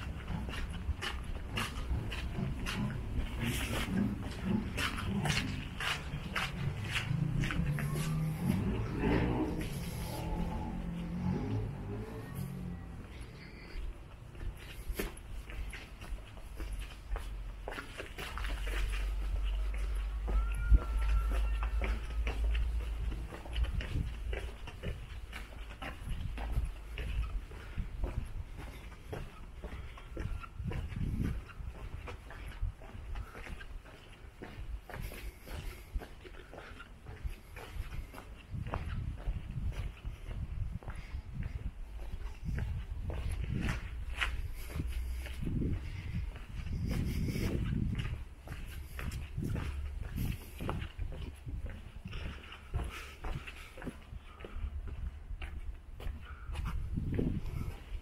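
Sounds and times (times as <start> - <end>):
low rumble: 0.0 - 14.7
footsteps on cobblestones: 0.0 - 58.0.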